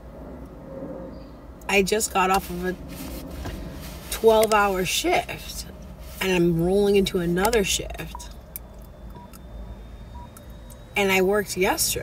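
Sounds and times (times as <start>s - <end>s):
car cabin rumble: 1.7s - 12.0s
faint electronic beeps: 7.1s - 12.0s.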